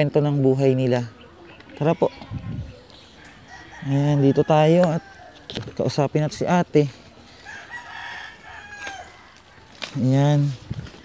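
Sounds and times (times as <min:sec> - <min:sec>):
rooster crowing: 0:03.2 - 0:05.5, 0:07.4 - 0:09.7.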